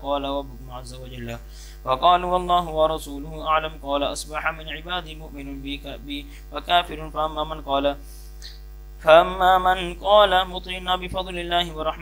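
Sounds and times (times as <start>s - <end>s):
man chanting text: 0.0s - 8.1s, 9.0s - 12.0s
electrical mains hum: 0.0s - 12.0s.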